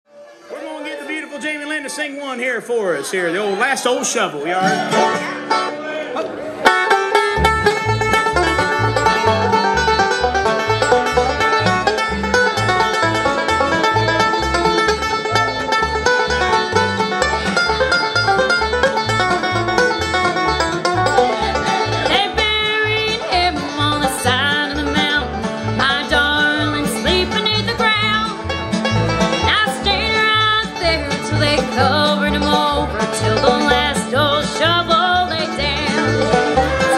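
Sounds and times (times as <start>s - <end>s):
fiddle: 0.1s - 5.8s, 6.4s - 36.9s
guitar: 3.3s - 36.9s
banjo: 3.4s - 36.9s
bass beat: 7.1s - 36.9s
woman singing lead vocal: 29.5s - 36.1s.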